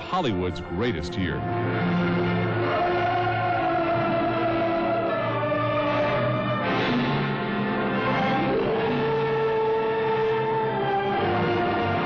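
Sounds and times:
choir singing held notes: 1.6s - 12.0s.

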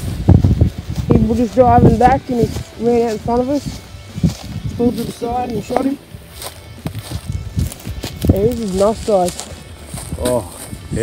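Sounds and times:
footsteps on dry grass and twigs: 0.0s - 11.0s.

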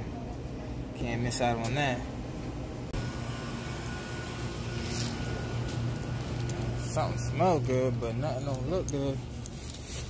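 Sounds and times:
ventilation and refrigeration hum: 0.0s - 10.0s.

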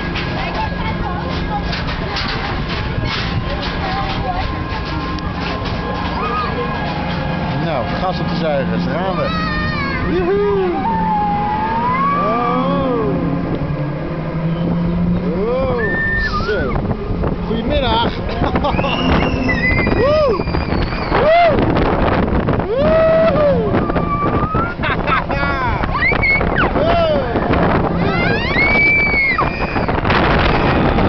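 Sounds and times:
ride machinery hum: 0.0s - 31.0s
riders shrieking and whooping: 9.3s - 13.1s, 15.7s - 16.8s, 18.5s - 21.8s, 22.5s - 31.0s.

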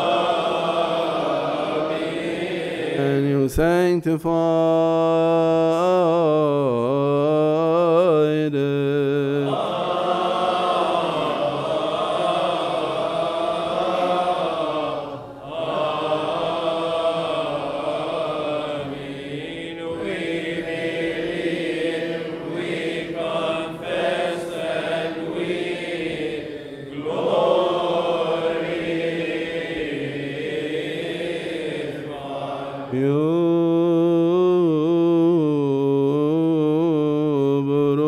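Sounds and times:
voices chanting: 0.0s - 3.4s, 9.1s - 35.4s.

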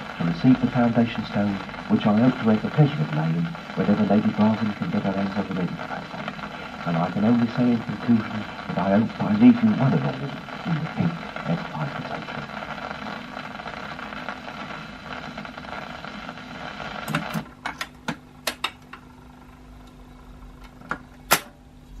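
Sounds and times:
record surface hiss: 0.0s - 22.0s
record changer clicking and clunking: 17.0s - 19.1s, 20.6s - 21.6s.

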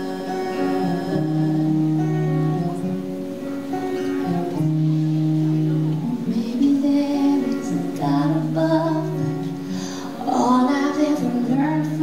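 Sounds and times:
woman singing: 0.0s - 3.3s, 6.0s - 12.0s
acoustic guitar: 0.0s - 12.0s.

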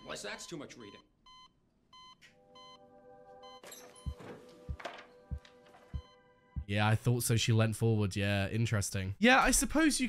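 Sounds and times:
heart-rate monitor beeping: 0.0s - 2.8s, 3.4s - 6.7s
low thuds: 4.1s - 6.7s.

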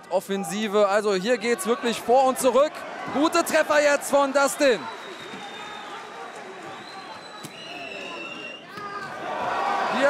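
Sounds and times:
crowd shouting: 1.2s - 10.0s.

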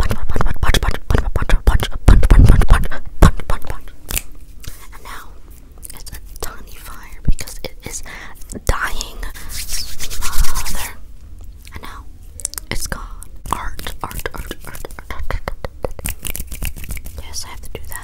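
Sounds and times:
palms rubbing together: 9.2s - 11.0s, 13.5s - 18.0s.

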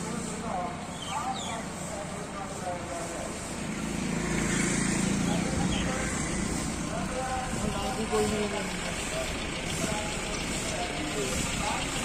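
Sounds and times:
vehicle engine rumbling: 0.0s - 12.0s
background voices: 4.9s - 12.0s.

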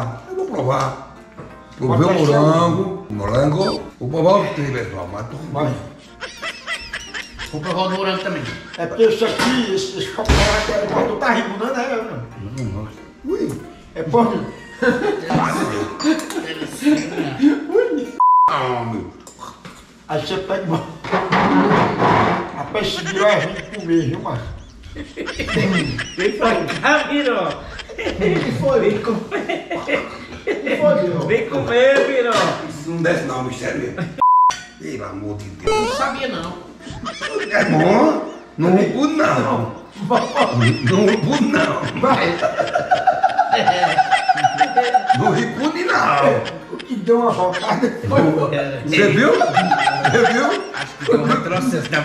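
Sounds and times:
men laughing: 5.6s - 10.3s, 14.3s - 18.2s, 22.6s - 31.2s, 36.8s - 52.0s
voices: 35.7s - 52.0s.

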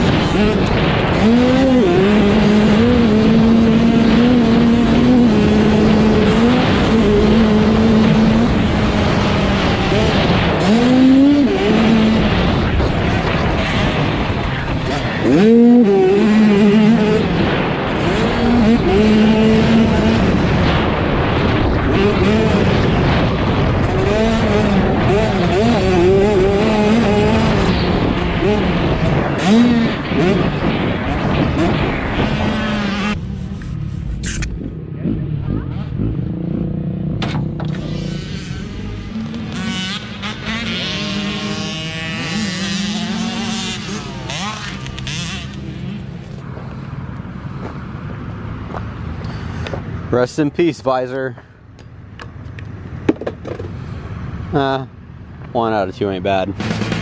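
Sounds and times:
dirt bike engine revving: 0.0s - 49.6s, 55.6s - 57.0s.

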